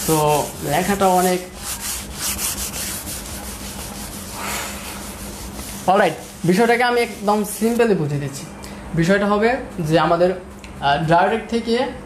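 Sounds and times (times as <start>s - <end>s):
scratchy hiss: 0.0s - 8.0s.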